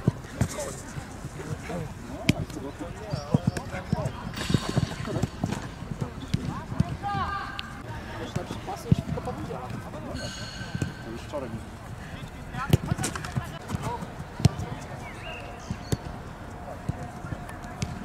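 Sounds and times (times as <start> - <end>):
footballs being kicked: 2.2 - 7.3, 12.6 - 14.8.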